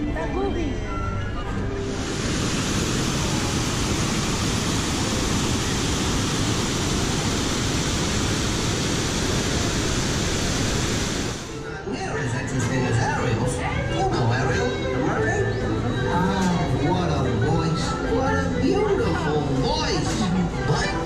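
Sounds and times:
waterfalls rushing into pool: 1.8 - 11.5.

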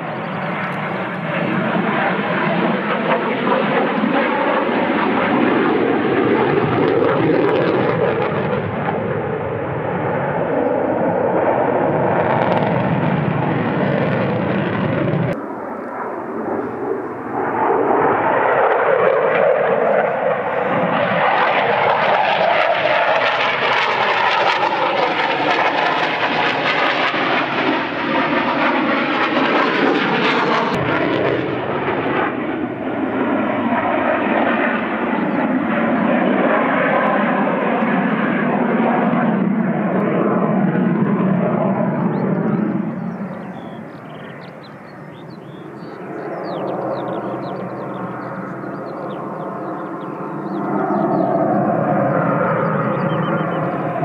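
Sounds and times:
fighter jet engines roaring: 0.0 - 54.0.

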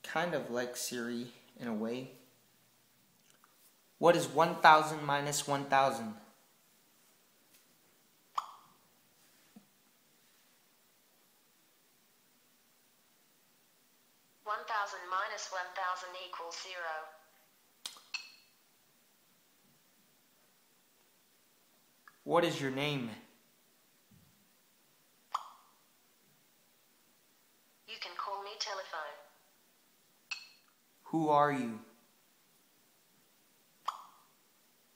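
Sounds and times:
phone pop-like blip: 8.4 - 8.7, 25.4 - 25.6.

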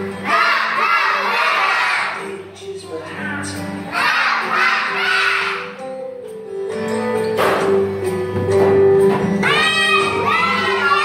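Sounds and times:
children shouting: 0.0 - 2.3, 3.9 - 5.8, 9.4 - 11.0.

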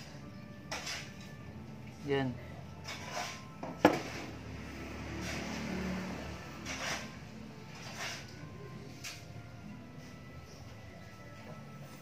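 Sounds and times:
metal tube handling and rubbing: 0.0 - 1.4, 2.7 - 4.4, 6.5 - 9.3.

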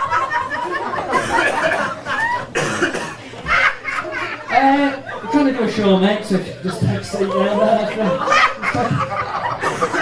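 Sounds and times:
person coughing: 1.1 - 2.0, 2.6 - 3.2.

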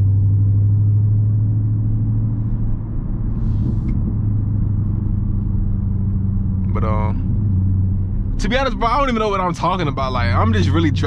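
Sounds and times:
car engine droning in cabin: 0.0 - 11.0.

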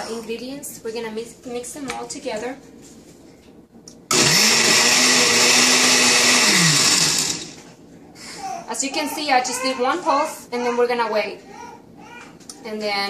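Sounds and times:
blender motor chopping: 4.1 - 7.6.

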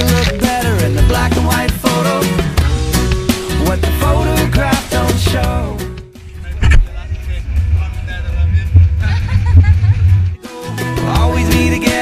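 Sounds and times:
gusting wind: 6.2 - 10.4.

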